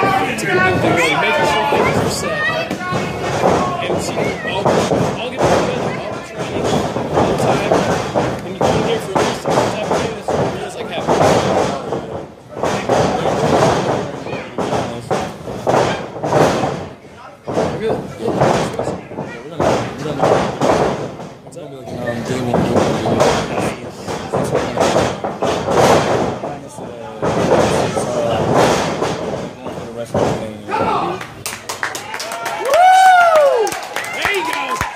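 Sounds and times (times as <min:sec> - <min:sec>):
people talking and calling out: 0:00.0 - 0:34.9.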